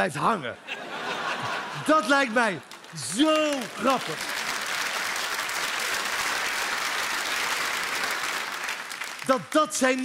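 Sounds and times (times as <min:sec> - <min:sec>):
audience applauding: 0:01.4 - 0:10.0.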